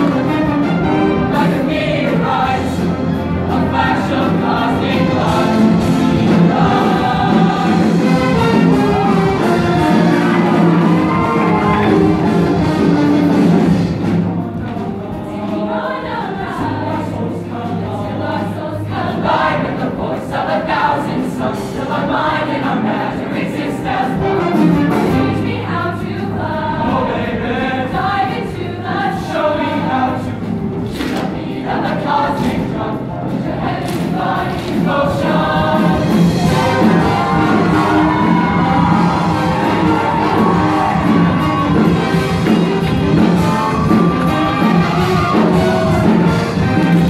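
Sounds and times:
band accompaniment: 0.0 - 47.0
choir singing: 0.0 - 47.0
bass line: 35.4 - 47.0.

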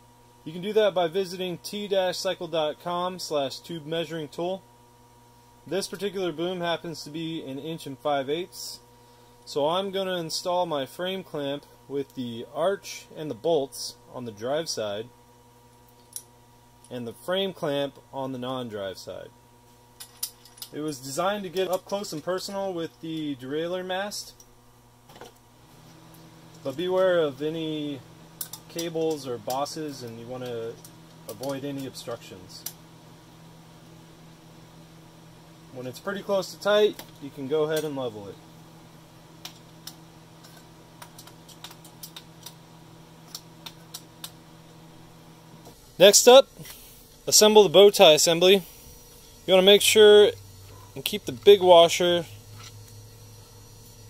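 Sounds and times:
low electrical hum: 0.0 - 54.0.

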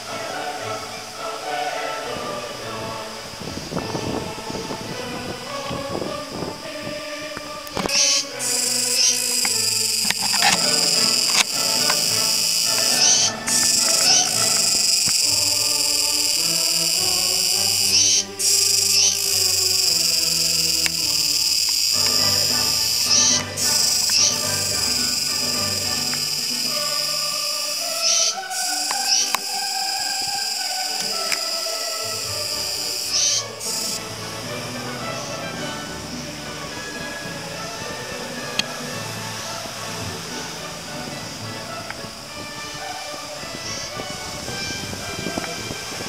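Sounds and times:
cicada buzzing: 7.7 - 34.1, 43.5 - 45.4.

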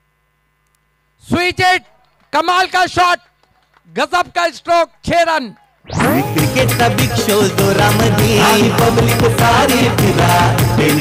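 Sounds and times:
faint electrical hum: 0.0 - 2.8.

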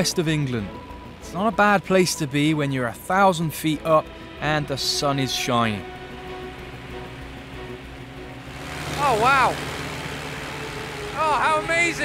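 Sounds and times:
light aircraft drone: 4.0 - 12.0
faint steady tones: 5.4 - 12.0.

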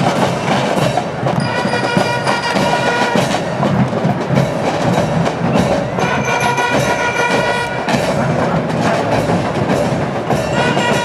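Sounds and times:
marching band drum beat: 0.0 - 11.0.

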